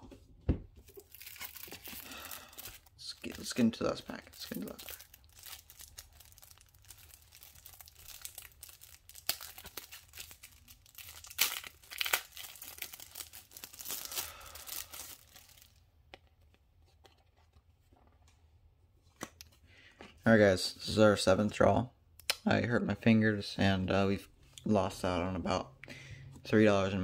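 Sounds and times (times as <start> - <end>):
wrapper tearing and crinkling: 0.9 - 15.8.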